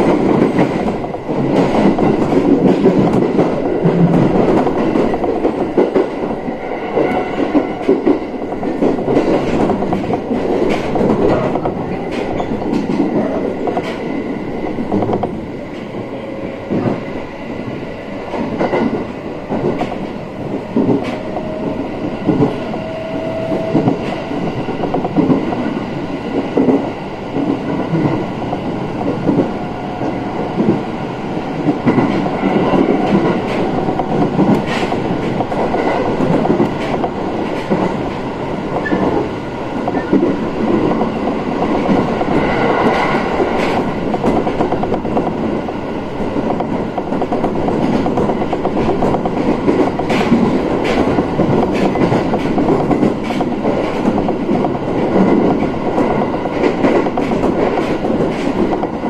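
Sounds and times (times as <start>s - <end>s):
train wheels rumbling on rails: 0.0s - 59.0s.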